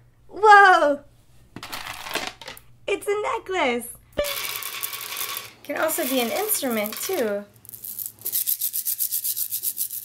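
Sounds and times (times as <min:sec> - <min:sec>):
plastic beads rattling: 0:04.2 - 0:10.0.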